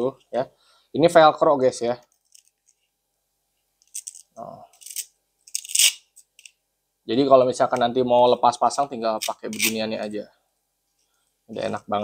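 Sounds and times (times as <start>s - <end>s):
velcro ripping apart: 4.8s - 6.1s.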